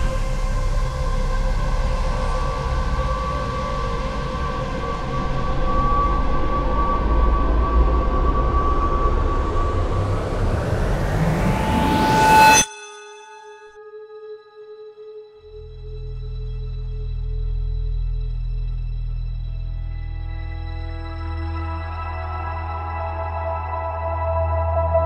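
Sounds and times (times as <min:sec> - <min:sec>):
ambient drone music: 0:00.0 - 0:25.0
rising whoosh: 0:05.9 - 0:12.7.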